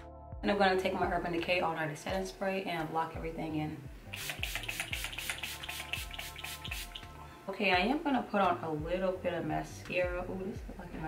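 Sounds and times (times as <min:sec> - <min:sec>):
background music with steady beat: 0:00.0 - 0:11.0
spray bottle hissing: 0:04.1 - 0:07.2.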